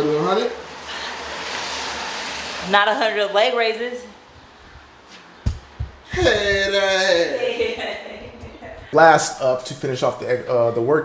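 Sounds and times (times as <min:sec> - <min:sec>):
low thumps: 0:04.3 - 0:07.2.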